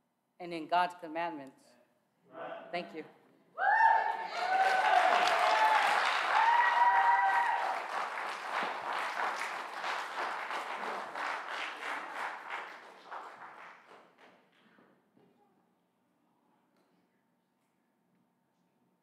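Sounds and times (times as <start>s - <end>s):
long cheers: 3.6s - 8.3s
congregation applauding: 3.8s - 14.4s.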